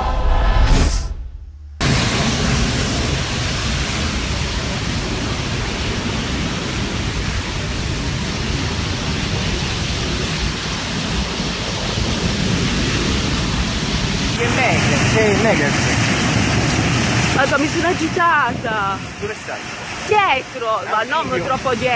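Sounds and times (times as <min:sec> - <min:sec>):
bus fire roaring: 0:01.8 - 0:21.9
wind on microphone: 0:01.8 - 0:21.9.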